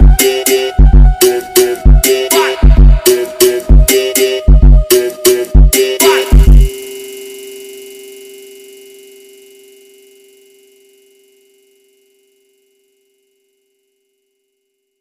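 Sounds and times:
held synthesizer tone: 0.0s - 9.2s.

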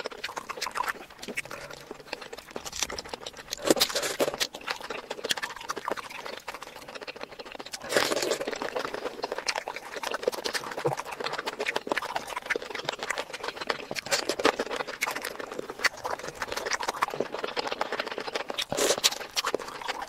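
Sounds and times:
chewing and mouth noises: 0.0s - 20.0s.

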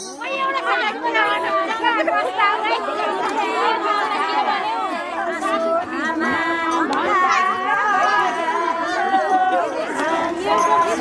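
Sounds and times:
women chattering and laughing: 0.0s - 11.0s.

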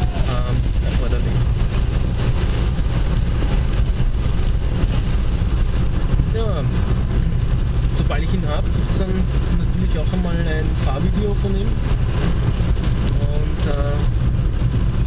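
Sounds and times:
car engine and road rumble: 0.0s - 15.0s
tyre noise on wet road: 0.0s - 15.0s.

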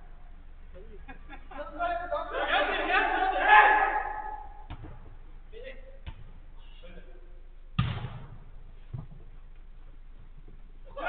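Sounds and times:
players shouting in a hall: 1.6s - 4.7s
football kick thud: 7.8s - 9.2s.

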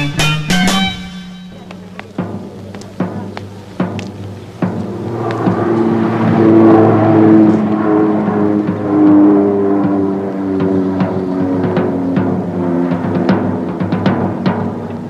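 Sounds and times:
beat rock instrumental: 0.0s - 2.0s
drum hits: 0.0s - 5.7s, 8.6s - 15.0s.

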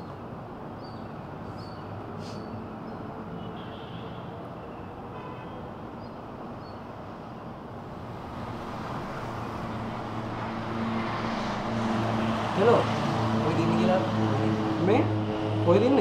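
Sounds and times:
road traffic rumble: 0.0s - 16.0s.

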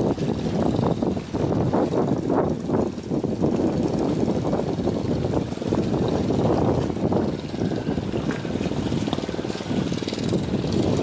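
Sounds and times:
boat engine running: 0.0s - 11.0s
water rushing against hull: 0.0s - 11.0s
wind on microphone: 0.0s - 11.0s.

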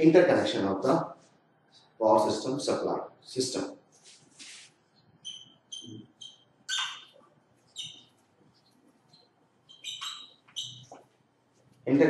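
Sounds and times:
marker squeaking on whiteboard: 3.9s - 11.8s.

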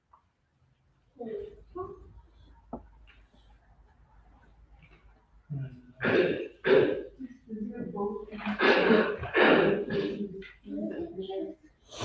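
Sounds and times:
person coughing: 6.0s - 7.2s, 8.4s - 10.3s
throaty sound: 6.0s - 7.2s, 8.4s - 10.4s.

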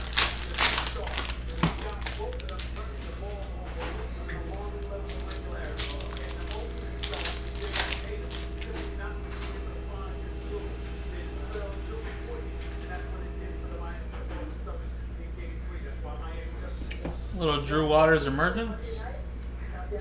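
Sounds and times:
foil wrapper tearing and crinkling: 0.0s - 3.4s, 4.5s - 9.0s
steady low hum: 0.0s - 20.0s.

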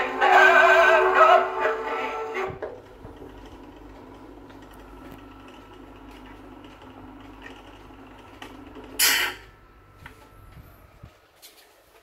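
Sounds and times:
gramophone motor whirring: 0.0s - 11.2s.

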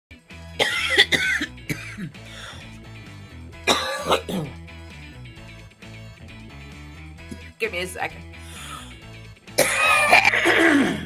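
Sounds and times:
background music with bass line: 0.1s - 11.0s
woman coughing: 0.6s - 2.2s, 3.7s - 4.6s, 9.6s - 11.0s.

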